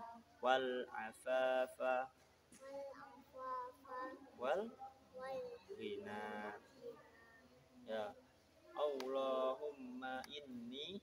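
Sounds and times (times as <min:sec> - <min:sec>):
boy chanting a prayer: 0:00.0 - 0:01.8, 0:02.6 - 0:11.0.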